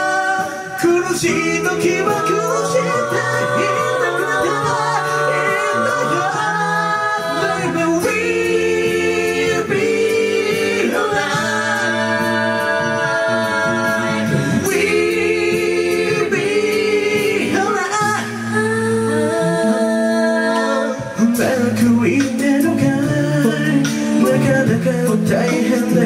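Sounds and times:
a cappella group singing: 0.0 - 26.0.

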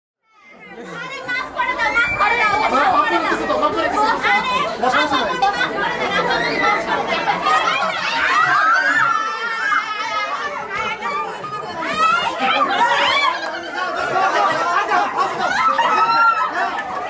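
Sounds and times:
crowd chattering: 0.2 - 17.0.

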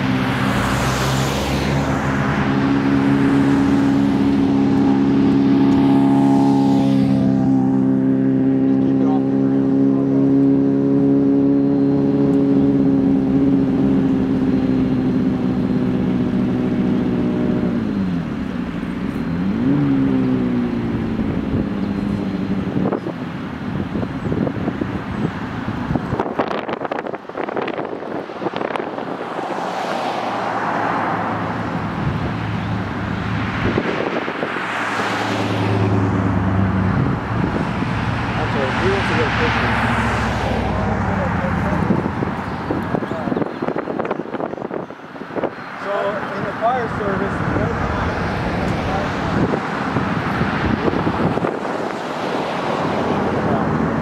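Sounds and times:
vehicles engine drone: 0.0 - 54.0.

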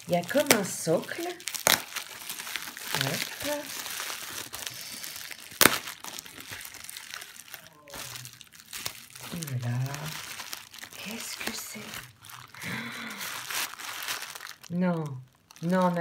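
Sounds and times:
bubble wrap snap: 0.0 - 14.7
bubble wrap crinkling: 0.0 - 16.0.

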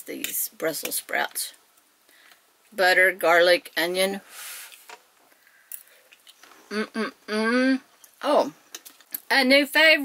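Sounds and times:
woman speaking: 0.0 - 1.6, 2.8 - 4.2, 6.7 - 8.6, 9.2 - 10.0
short breathy hiss: 4.2 - 6.0.

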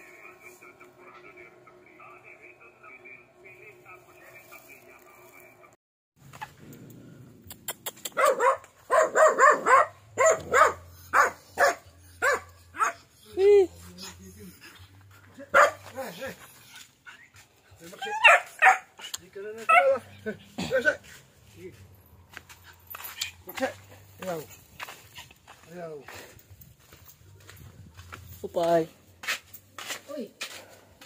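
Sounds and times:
dog yelping: 8.0 - 14.5, 15.5 - 15.9, 18.0 - 20.3
small dog barking: 8.1 - 13.1, 15.5 - 16.0, 18.0 - 19.0, 19.6 - 20.1.

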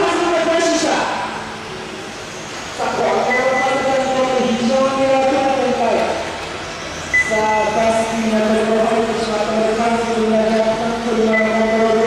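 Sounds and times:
short high beep: 3.2 - 3.8, 7.1 - 7.7.

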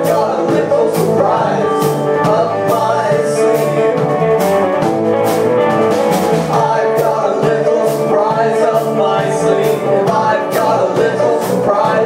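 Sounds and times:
bass guitar: 0.0 - 12.0
drum kit with cymbals: 0.0 - 12.0
electric guitar: 0.0 - 12.0.

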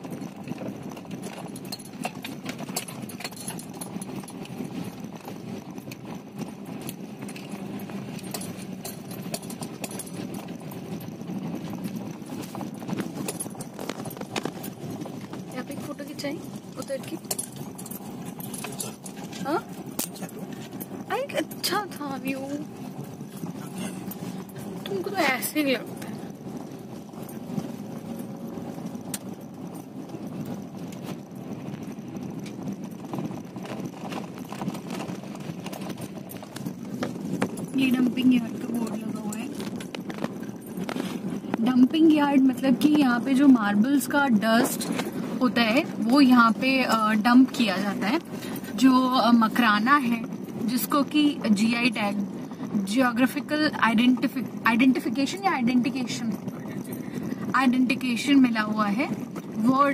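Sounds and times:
car body rattling: 0.0 - 59.9
low road rumble: 0.0 - 59.9.

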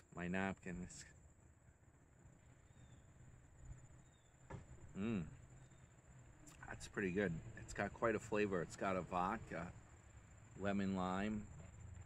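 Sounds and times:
faint steady high hiss: 0.0 - 12.0.

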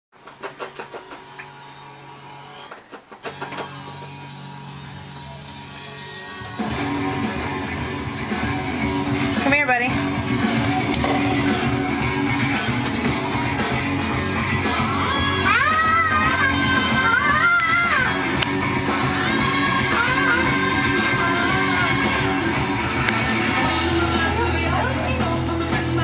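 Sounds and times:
rock music with electric guitar: 1.3 - 26.0.

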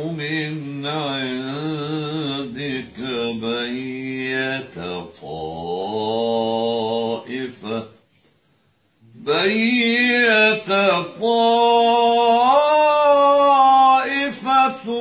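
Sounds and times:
man reciting melodically: 0.0 - 8.4, 9.0 - 15.0.

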